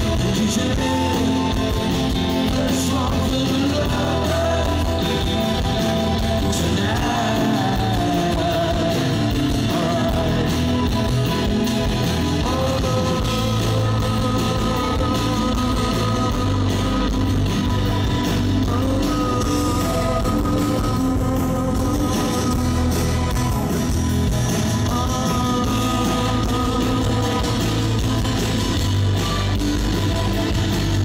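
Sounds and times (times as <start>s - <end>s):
man singing: 0.0s - 30.8s
drums: 0.0s - 31.0s
live rock band playing: 0.0s - 31.0s
strummed acoustic guitar: 0.0s - 31.0s.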